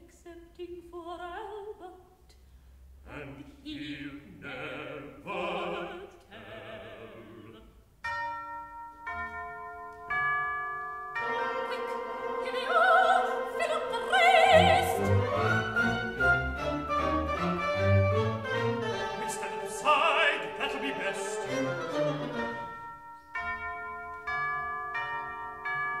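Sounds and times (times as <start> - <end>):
orchestral opera music: 3.0 - 8.2, 11.1 - 26.0
bell-like notes ringing: 8.0 - 15.3, 20.3 - 26.0.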